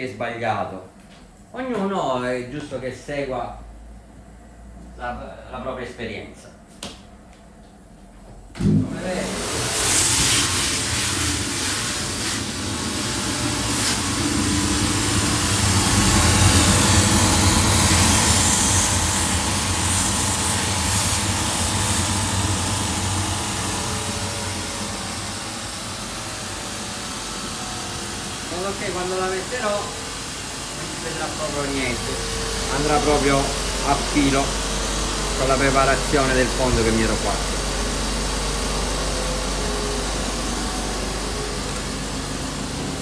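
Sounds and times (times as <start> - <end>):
motor and abrasive wheels running: 8.6 - 43.0.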